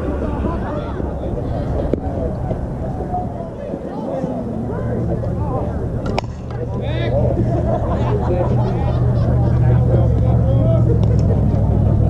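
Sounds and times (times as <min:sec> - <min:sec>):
distant voices: 0:00.0 - 0:12.0
steady low rumble: 0:00.0 - 0:12.0
bat cracking ball: 0:06.0 - 0:06.8.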